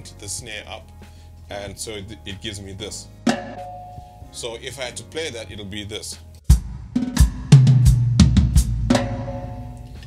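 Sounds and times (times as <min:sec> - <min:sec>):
drum kit hits: 0:03.3 - 0:04.4, 0:06.5 - 0:10.0
low drum ringing: 0:06.5 - 0:10.0.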